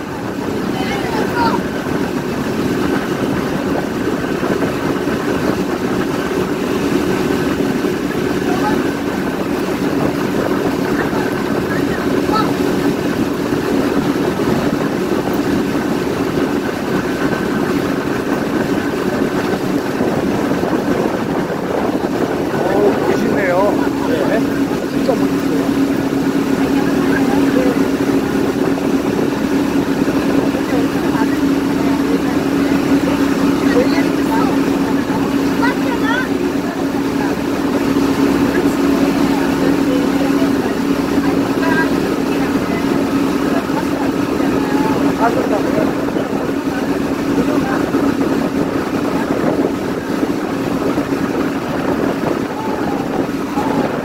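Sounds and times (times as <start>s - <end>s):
motorboat engine running: 0.0s - 54.0s
water rushing past hull: 0.0s - 54.0s.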